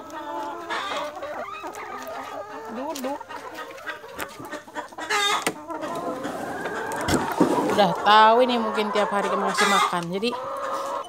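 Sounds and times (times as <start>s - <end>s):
chickens clucking: 0.0s - 11.0s.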